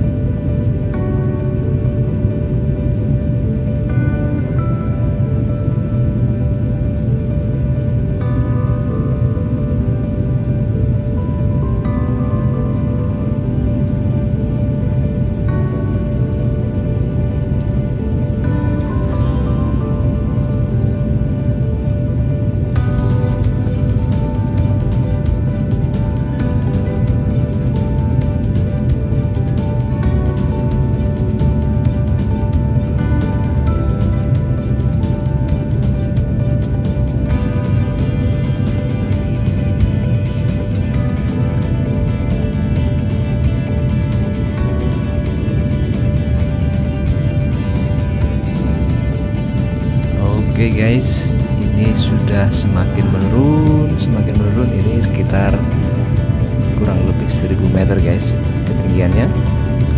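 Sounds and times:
airliner cabin rumble: 0:00.0 - 0:59.9
slow background music: 0:00.0 - 0:59.9.

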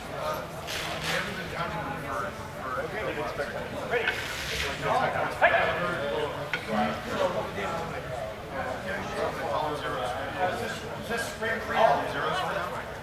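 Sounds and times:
indistinct talking: 0:00.0 - 0:13.0.

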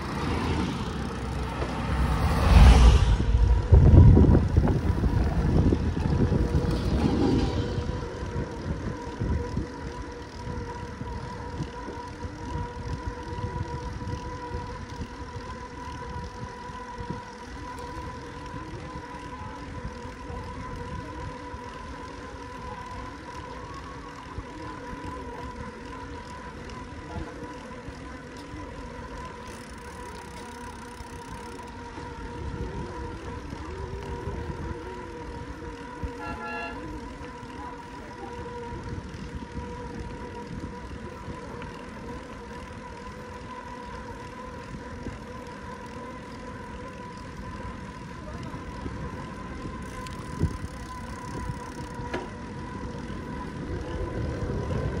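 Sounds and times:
bicycle tyre and road noise: 0:00.0 - 0:55.0
faint steady hum: 0:00.0 - 0:55.0
wind buffeting microphone: 0:00.0 - 0:55.0.

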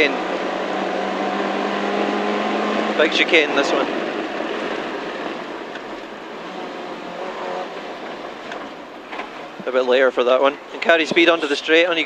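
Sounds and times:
car engine pulling steadily: 0:00.0 - 0:12.0
road noise: 0:00.0 - 0:12.0.

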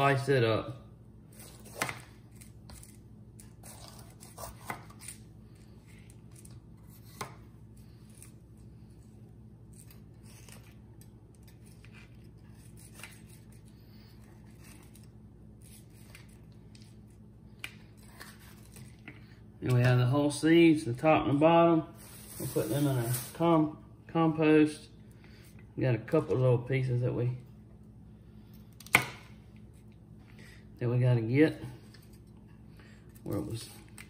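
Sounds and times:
knife slicing pepper: 0:01.3 - 0:05.2.

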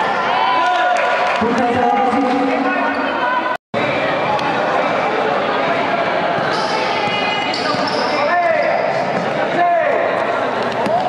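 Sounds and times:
basketball bouncing on court: 0:06.3 - 0:08.1
shoe squeaks: 0:06.4 - 0:09.3.

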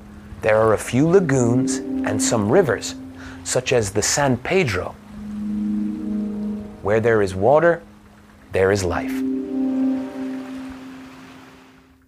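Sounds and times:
soft synth chord music: 0:00.5 - 0:08.0, 0:08.6 - 0:11.9.

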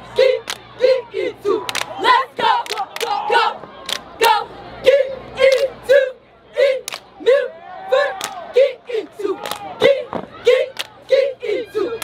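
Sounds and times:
cheerleaders chanting in unison: 0:00.0 - 0:12.0.

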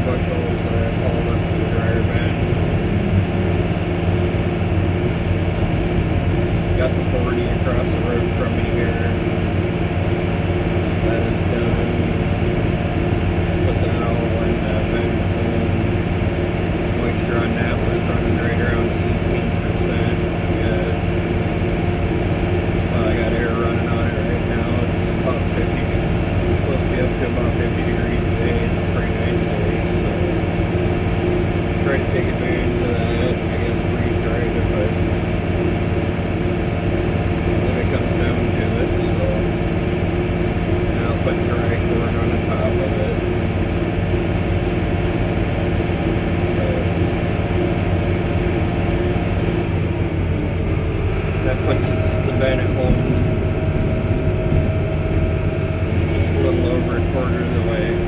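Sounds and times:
tractor engine running: 0:00.0 - 0:58.0.

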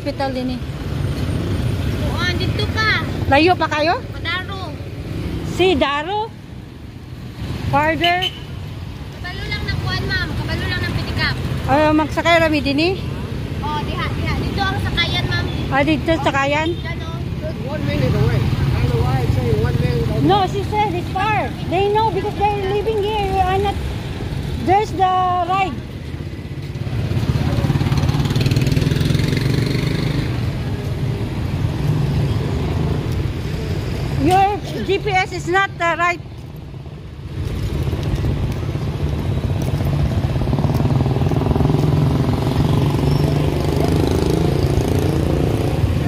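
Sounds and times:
street traffic: 0:00.0 - 0:46.0.

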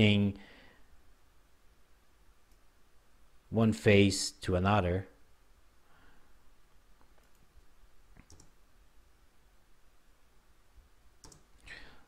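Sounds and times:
faint computer mouse clicks: 0:08.1 - 0:08.6, 0:11.2 - 0:11.5.

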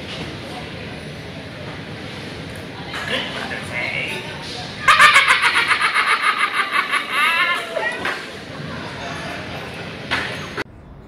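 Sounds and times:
person laughing high-pitched: 0:04.8 - 0:07.9.

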